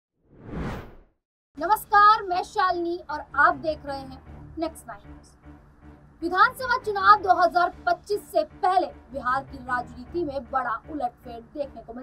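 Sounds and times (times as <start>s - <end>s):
whoosh: 0.2s - 1.1s.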